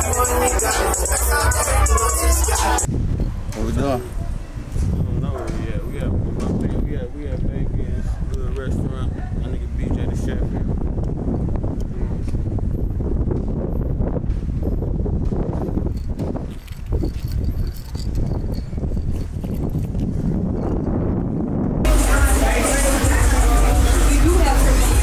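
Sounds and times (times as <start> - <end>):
indistinct voices: 0.0 - 2.9, 21.9 - 25.0
music track: 0.0 - 2.9
wind rumbling on microphone: 2.8 - 22.4.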